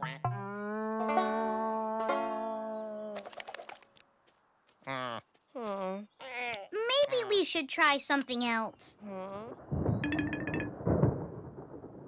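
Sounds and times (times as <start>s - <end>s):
plucked string notes: 0.0s - 3.0s.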